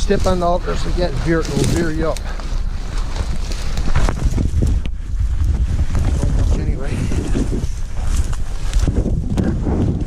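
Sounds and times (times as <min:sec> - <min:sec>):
footsteps crunching through snow: 0:00.0 - 0:10.0
wind rumbling on microphone: 0:00.0 - 0:10.0.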